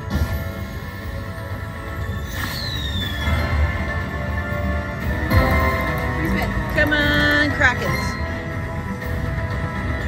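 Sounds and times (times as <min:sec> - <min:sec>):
slot machine bonus music: 0:02.7 - 0:10.0.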